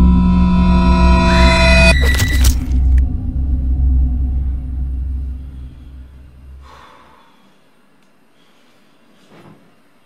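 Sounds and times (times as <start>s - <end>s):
deep cinematic rumble: 0.0s - 7.0s.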